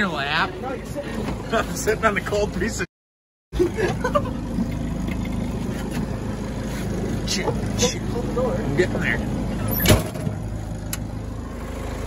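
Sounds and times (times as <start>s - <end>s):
engine humming: 3.6s - 12.0s.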